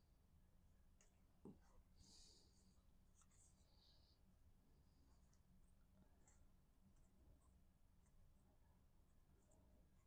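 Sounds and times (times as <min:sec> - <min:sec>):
soft rustles of cardstock: 0:00.9 - 0:04.2.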